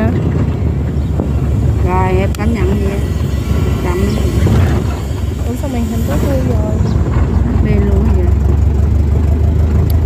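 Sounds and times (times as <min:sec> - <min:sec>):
people talking: 0:00.0 - 0:00.2, 0:01.8 - 0:08.4
engine running with low hum: 0:00.0 - 0:10.0.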